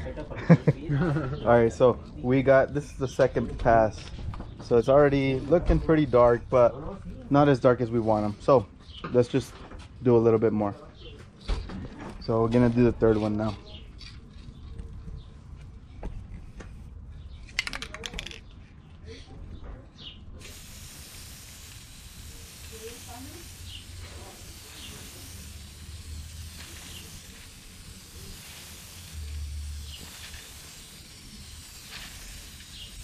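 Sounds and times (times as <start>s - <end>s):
aerosol spray can hissing: 20.4s - 33.0s.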